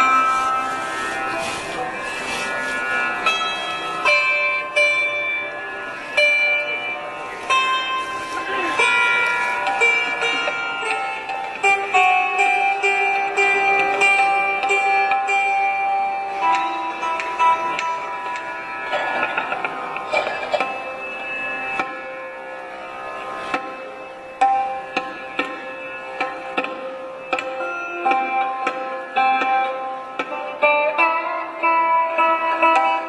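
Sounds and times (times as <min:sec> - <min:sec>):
plucked sarod notes: 0:00.0 - 0:33.0
tabla: 0:00.0 - 0:33.0.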